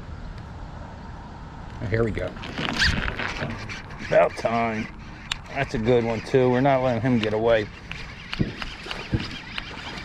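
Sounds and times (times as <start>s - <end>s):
fishing reel clicking: 2.7s - 10.0s.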